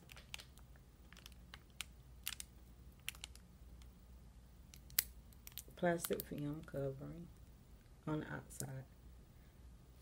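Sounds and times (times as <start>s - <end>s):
fingers handling tape: 0.0s - 3.9s.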